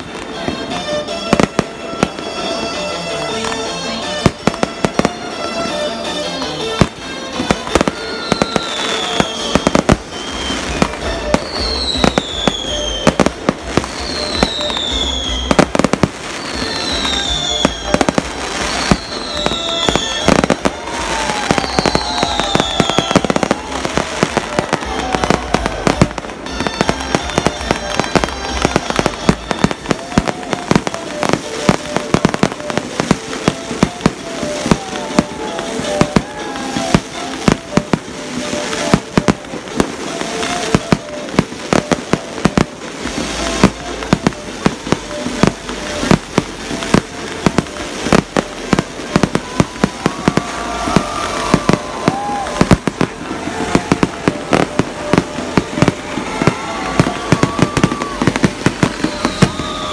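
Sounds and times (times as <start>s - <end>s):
fireworks bangs: 0.0s - 59.9s
fireworks crackling: 0.0s - 59.9s.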